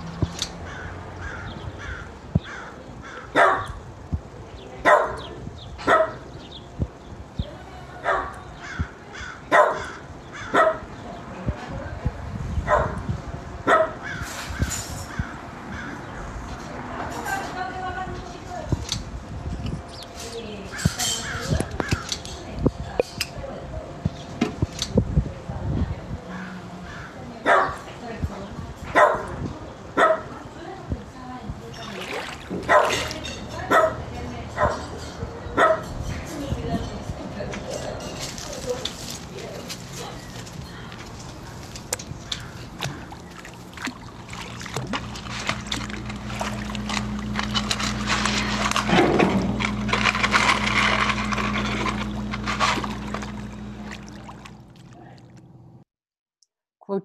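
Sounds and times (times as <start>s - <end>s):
dog barking: 3.3s - 3.8s, 4.8s - 6.2s, 8.0s - 8.4s, 9.5s - 10.9s, 12.7s - 13.0s, 13.7s - 14.0s, 27.4s - 27.8s, 28.9s - 29.3s, 30.0s - 30.3s, 32.7s - 33.0s, 33.7s - 34.0s, 34.6s - 34.9s, 35.6s - 35.9s.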